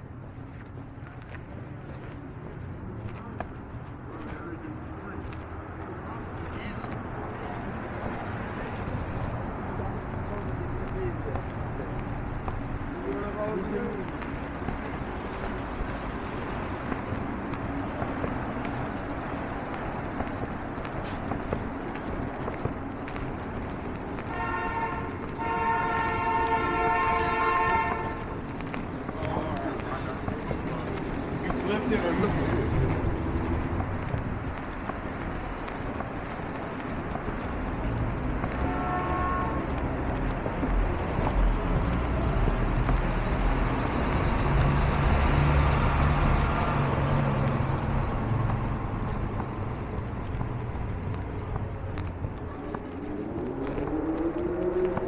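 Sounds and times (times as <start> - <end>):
street traffic noise: 0.0 - 55.0
vehicles passing by: 0.0 - 55.0.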